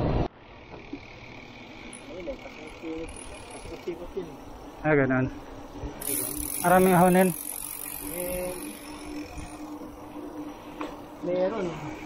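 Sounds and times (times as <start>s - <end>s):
wind and road noise from bicycle: 0.0s - 12.0s
steady high hum: 0.2s - 12.0s.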